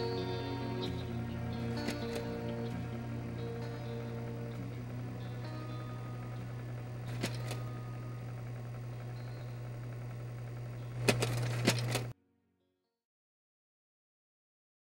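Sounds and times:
faint tones: 0:00.0 - 0:12.1
steady low hum: 0:00.0 - 0:12.2
crackling clicks: 0:01.6 - 0:12.1.

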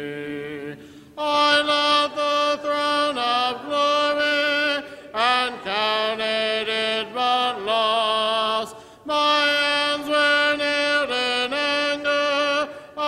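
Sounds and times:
congregation singing a hymn: 0:00.0 - 0:13.0.

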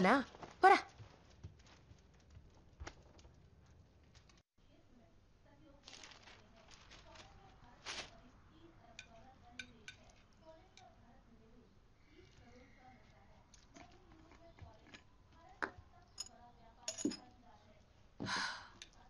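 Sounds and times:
metal spoon clinking on china: 0:08.9 - 0:10.9, 0:16.1 - 0:17.3.

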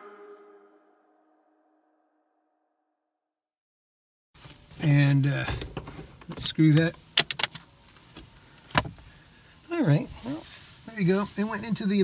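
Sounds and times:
sun visor clicking: 0:06.7 - 0:09.0.

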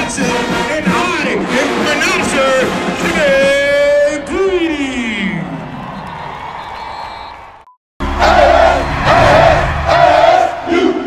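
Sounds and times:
group shouting a chant: 0:08.1 - 0:11.0.

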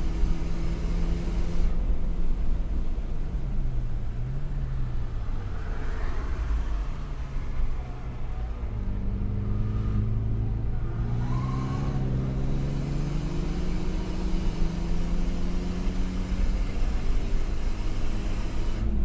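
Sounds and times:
car engine accelerating: 0:00.0 - 0:19.0
road noise rumble: 0:00.0 - 0:19.0.

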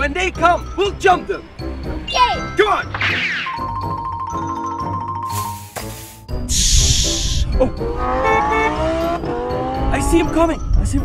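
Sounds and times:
background music with mallet tones: 0:00.0 - 0:11.0
sports car engine revving: 0:07.8 - 0:10.2.

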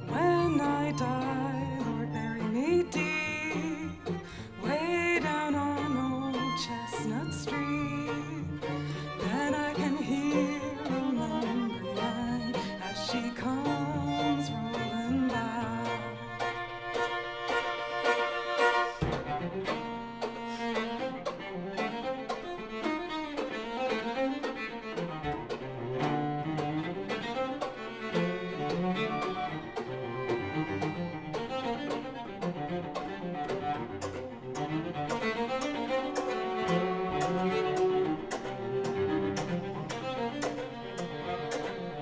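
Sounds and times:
string quartet playing: 0:00.0 - 0:42.0.

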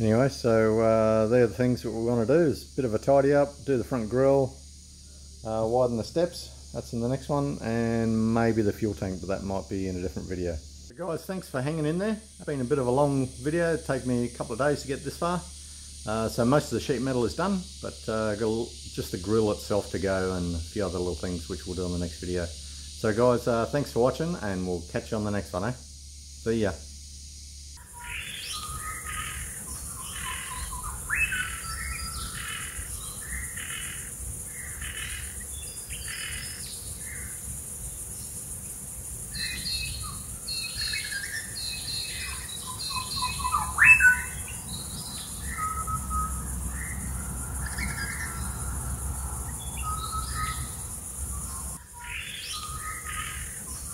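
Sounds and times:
steady high hiss: 0:00.0 - 0:53.9
birds calling and chirping: 0:27.8 - 0:53.9.

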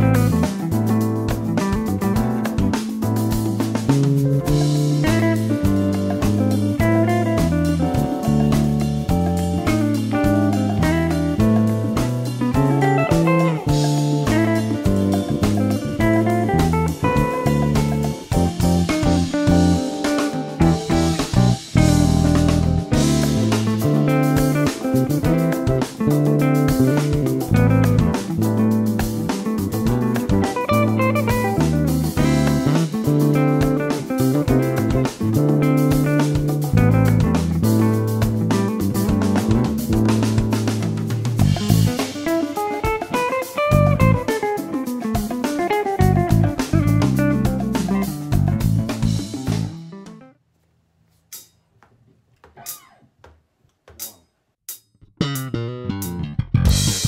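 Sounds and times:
backing track with drums: 0:00.0 - 0:50.3, 0:51.2 - 0:57.0
electric bass played fingerstyle: 0:00.0 - 0:50.4, 0:55.0 - 0:57.0.

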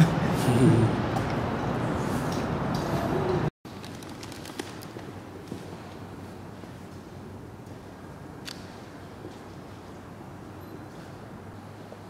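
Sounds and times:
loud busy ambience: 0:00.0 - 0:12.0.

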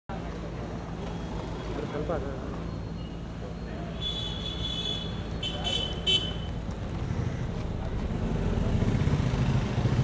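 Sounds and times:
vehicle engines low hum: 0:00.1 - 0:10.0.

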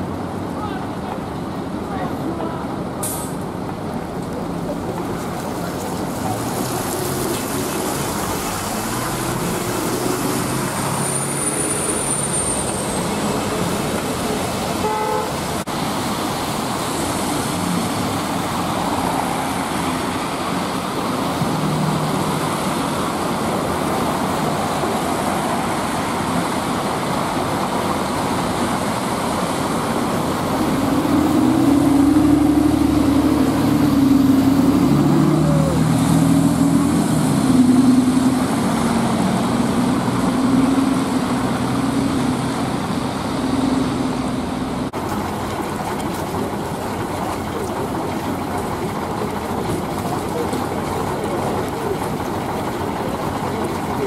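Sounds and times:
vehicles passing on wet road: 0:00.0 - 0:54.0
sustained wavering horn tone: 0:14.8 - 0:15.4
car horns: 0:14.8 - 0:15.5.

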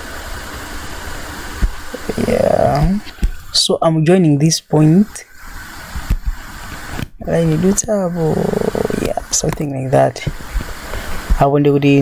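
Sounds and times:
motor running with low rumble: 0:05.0 - 0:11.5.

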